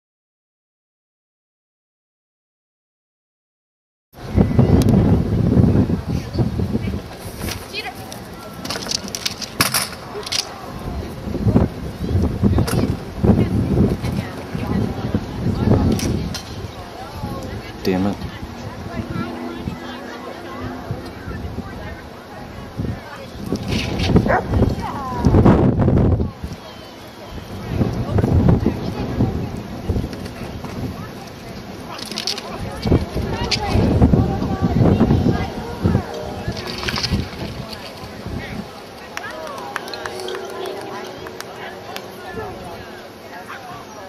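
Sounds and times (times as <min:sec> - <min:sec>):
wind buffeting microphone: 0:04.2 - 0:43.9
faint voices: 0:04.2 - 0:44.0.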